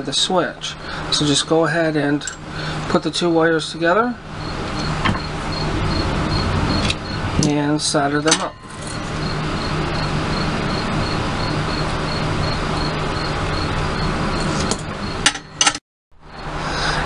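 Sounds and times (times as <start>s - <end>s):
buzzing hum: 4.1s - 16.8s.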